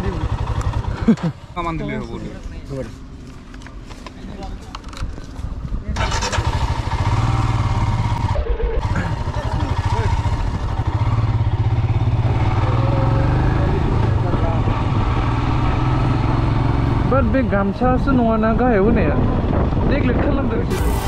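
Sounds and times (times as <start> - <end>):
motorcycle engine rumbling: 0.0 - 1.8, 3.0 - 19.9.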